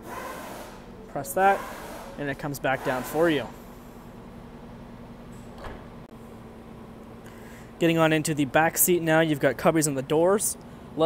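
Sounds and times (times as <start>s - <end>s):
steady low hum: 0.0s - 11.0s
power liftgate motor closing: 5.3s - 6.1s.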